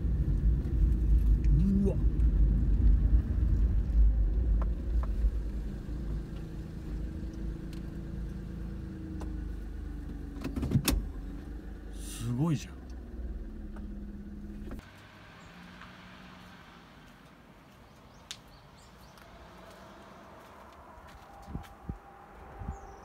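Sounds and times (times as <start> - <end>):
car engine idling: 0.0 - 15.5
car engine and tyres rumbling: 0.0 - 23.0.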